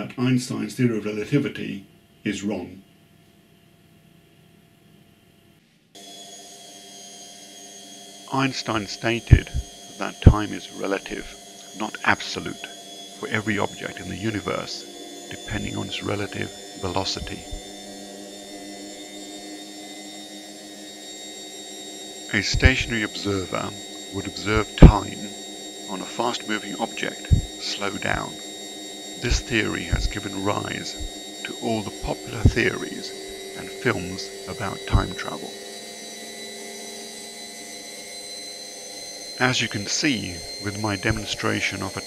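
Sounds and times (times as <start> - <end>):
steady hum of held tones: 0.0 - 42.0.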